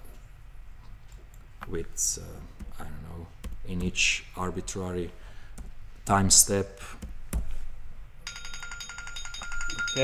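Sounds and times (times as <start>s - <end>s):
electronic ringtone trill: 8.3s - 10.0s.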